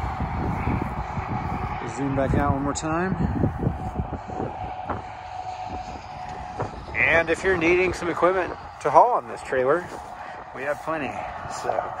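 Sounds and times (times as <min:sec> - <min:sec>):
faint steady drone: 0:00.0 - 0:12.0
low rumble on microphone: 0:00.0 - 0:12.0.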